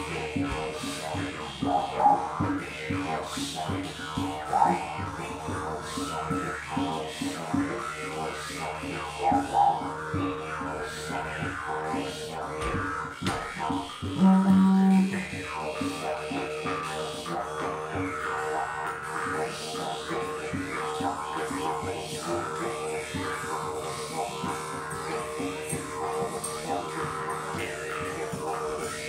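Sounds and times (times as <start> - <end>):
didgeridoo droning: 0.0 - 29.0.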